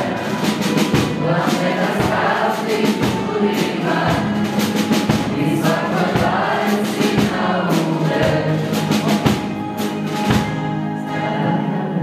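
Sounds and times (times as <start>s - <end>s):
choir singing with accompaniment: 0.0s - 12.0s.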